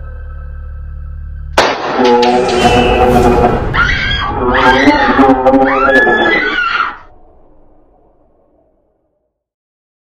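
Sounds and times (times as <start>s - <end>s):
dramatic horror music: 0.0s - 9.0s
woman screaming: 3.7s - 7.1s.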